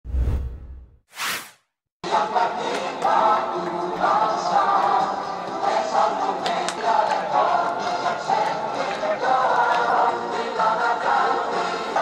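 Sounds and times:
short whoosh: 0.0 - 1.6.

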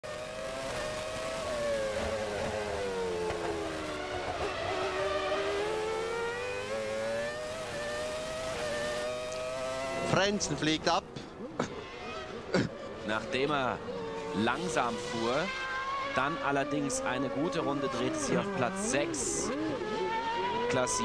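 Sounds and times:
racing car engine at high revs: 0.0 - 10.6, 11.6 - 21.0.

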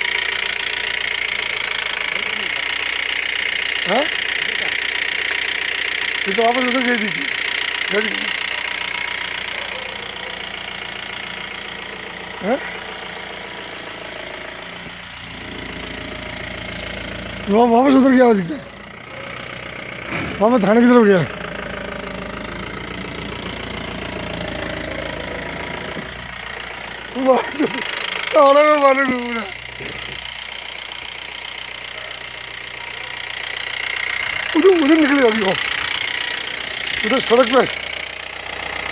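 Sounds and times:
vehicle engine idling: 0.0 - 38.9.

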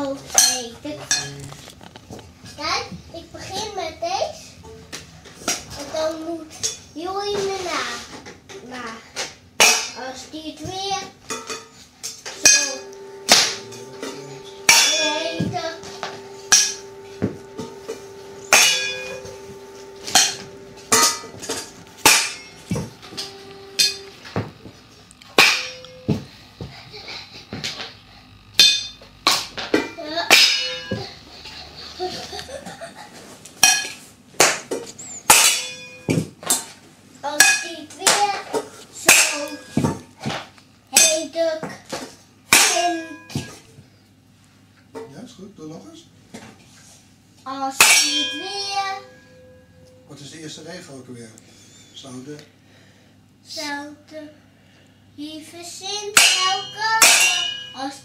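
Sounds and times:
ladle striking metal pots: 12.4 - 24.2, 25.2 - 26.2, 29.8 - 31.2, 35.3 - 36.2, 39.1 - 40.0, 47.8 - 49.6, 56.1 - 57.9.

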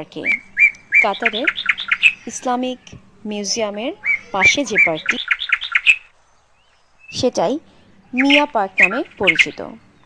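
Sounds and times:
small bird chirping: 0.2 - 10.0.

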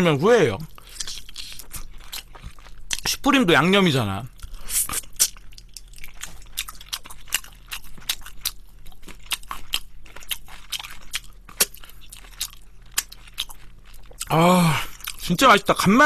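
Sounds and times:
crunching and chewing fried chicken: 0.0 - 16.0.

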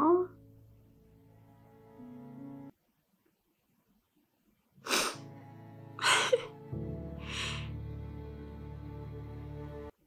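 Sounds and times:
low soundtrack music: 0.0 - 2.7, 5.2 - 10.0
sharp gasping breaths: 4.8 - 5.3, 7.2 - 7.8.

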